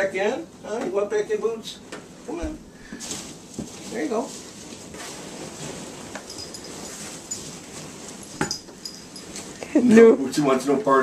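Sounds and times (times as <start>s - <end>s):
foam packing peanuts rustling: 3.0s - 8.4s.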